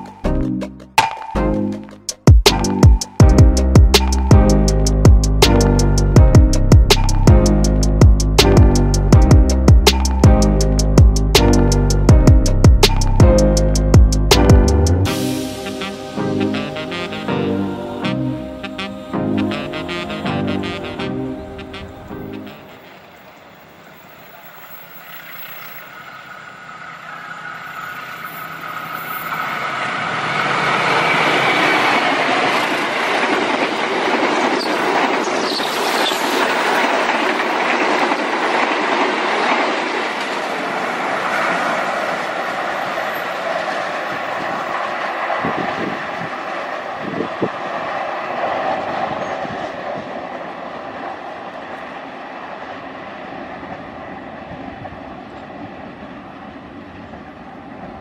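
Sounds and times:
train passing at speed: 1.2s - 58.0s.

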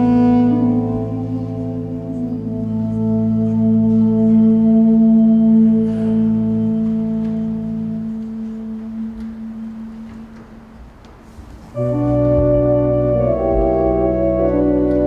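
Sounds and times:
organ sustained chord: 0.0s - 10.8s, 11.7s - 15.0s.

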